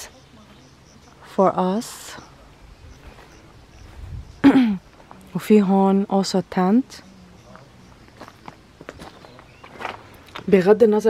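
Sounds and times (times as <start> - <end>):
faint footsteps: 2.8 - 5.8, 7.0 - 10.7.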